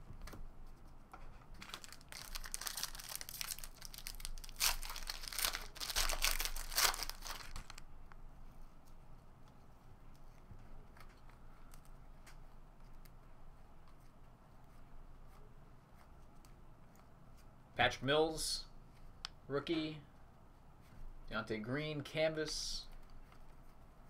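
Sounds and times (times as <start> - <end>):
foil wrapper tearing and crinkling: 1.6 - 7.8.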